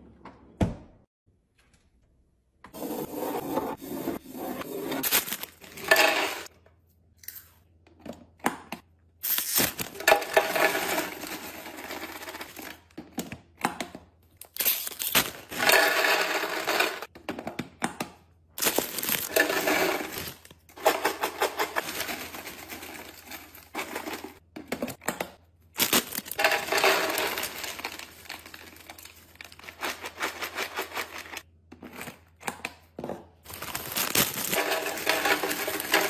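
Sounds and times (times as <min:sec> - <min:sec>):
foil bags crinkling and tearing: 0:05.0 - 0:05.8, 0:09.2 - 0:10.2, 0:14.4 - 0:15.5, 0:18.6 - 0:20.6, 0:25.8 - 0:31.4, 0:33.5 - 0:36.0
chips clattering into plastic canister: 0:05.0 - 0:06.5, 0:09.3 - 0:12.8, 0:14.5 - 0:17.1, 0:18.6 - 0:24.4, 0:25.8 - 0:31.4, 0:33.5 - 0:36.0.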